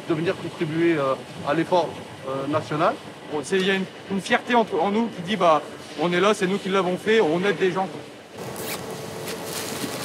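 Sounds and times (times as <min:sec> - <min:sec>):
faint machinery hum: 0:00.0 - 0:10.0
packing tape tearing off roll: 0:08.4 - 0:10.0.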